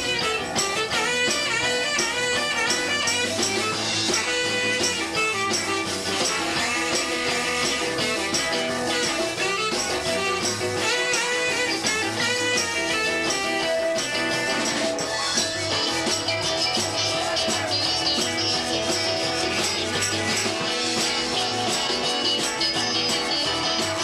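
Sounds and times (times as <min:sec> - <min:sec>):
electric guitar: 0:00.0 - 0:24.0
live blues band: 0:00.0 - 0:24.0
saxophone melody: 0:00.0 - 0:24.0.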